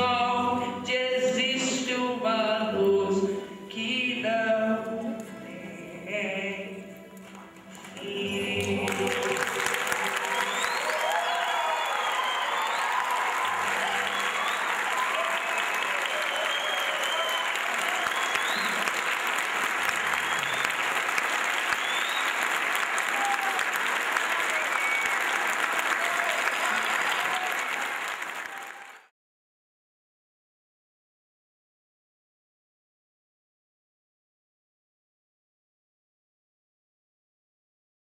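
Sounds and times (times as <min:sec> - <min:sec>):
audience applauding: 0:07.5 - 0:29.1.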